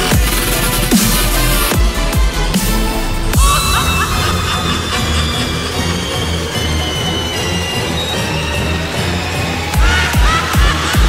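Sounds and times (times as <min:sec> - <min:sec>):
electronic dance music: 0:00.0 - 0:11.0.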